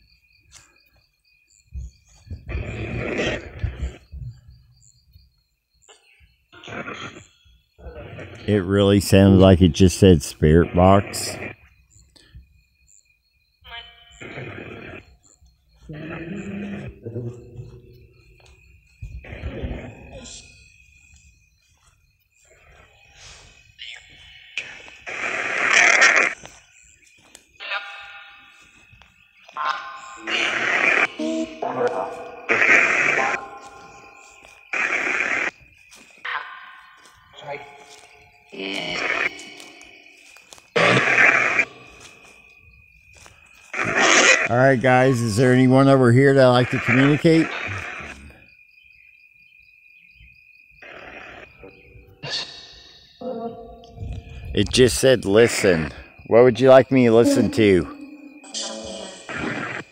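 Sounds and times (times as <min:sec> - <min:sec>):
garbled voice fragments: 0:08.4 - 0:11.5, 0:29.6 - 0:33.6, 0:44.4 - 0:47.8, 0:54.5 - 0:59.8
static bursts: 0:24.7 - 0:26.4, 0:30.2 - 0:35.6, 0:40.8 - 0:41.8, 0:59.2 - 0:59.9
thin steady high tone: 0:54.7 - 0:59.3.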